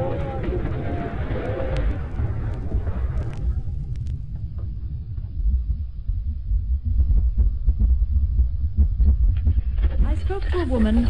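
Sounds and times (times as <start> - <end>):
deep continuous rumble: 0.0 - 11.0
irregular dull thuds: 0.4 - 10.3.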